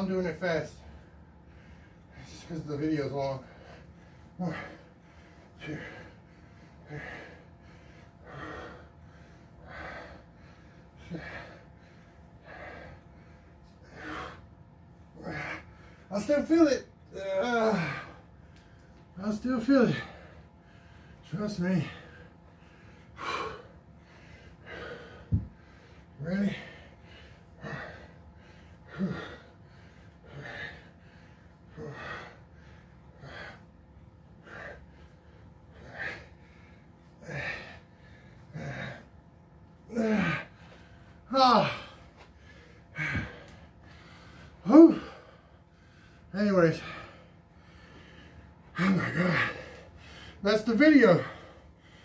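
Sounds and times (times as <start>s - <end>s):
man breathing hard: 0.0s - 52.0s
man grunting: 4.4s - 4.8s, 15.2s - 15.6s, 16.2s - 18.2s, 26.2s - 26.8s, 28.9s - 29.4s, 37.2s - 37.8s, 38.6s - 39.1s, 39.9s - 40.5s, 41.3s - 42.0s, 48.8s - 49.8s.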